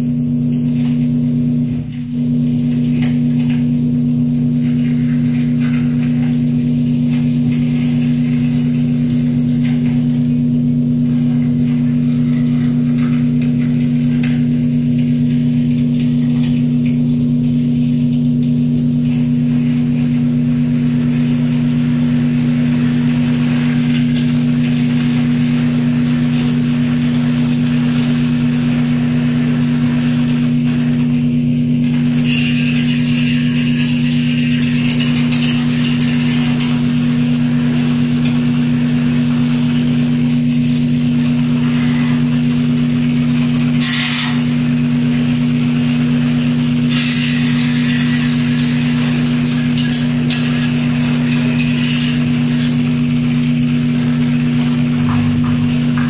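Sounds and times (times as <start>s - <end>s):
bright high hiss: 0.0s - 1.0s
low electronic drone: 0.0s - 46.8s, 47.5s - 56.0s
crackling noise: 0.0s - 56.0s.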